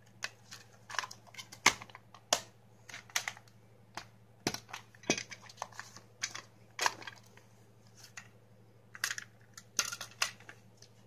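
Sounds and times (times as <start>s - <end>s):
plastic cases clicking and knocking: 0.2s - 7.3s.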